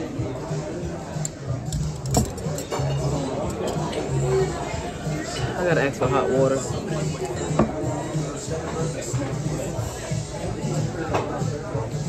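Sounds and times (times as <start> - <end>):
background music: 0.0 - 12.0
diners chatting: 0.0 - 12.0
tableware clinking: 1.7 - 4.1.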